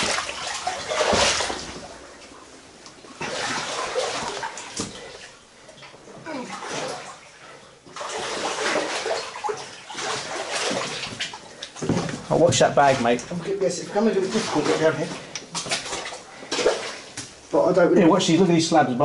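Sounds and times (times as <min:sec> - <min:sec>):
water sloshing and splashing: 0:00.0 - 0:18.7.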